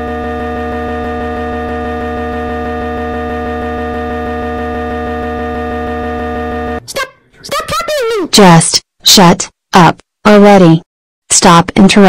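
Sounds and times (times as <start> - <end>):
electronic drone chord: 0.0 - 6.9
buzzing low hum: 0.0 - 7.4.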